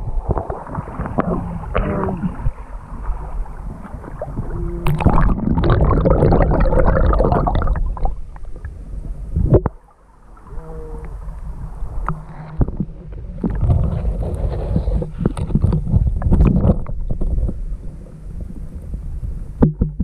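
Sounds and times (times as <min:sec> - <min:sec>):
water sloshing: 0:00.0 - 0:08.8
muffled underwater rumble: 0:00.0 - 0:20.0
camera knocking and scraping: 0:13.5 - 0:17.6.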